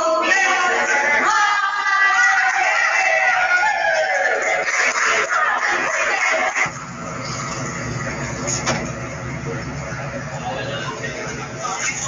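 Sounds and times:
group voices: 0.0 - 6.9.

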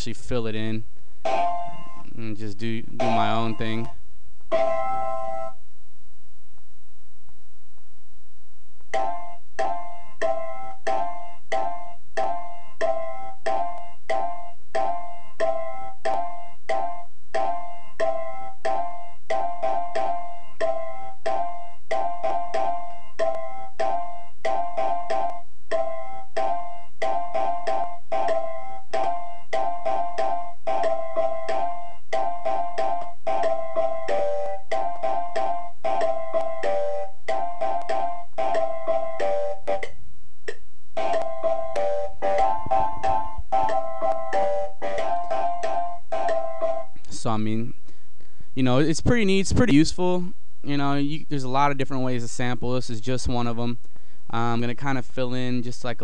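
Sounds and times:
looping sampled music phrase: 0.0 - 5.6, 8.9 - 47.7.

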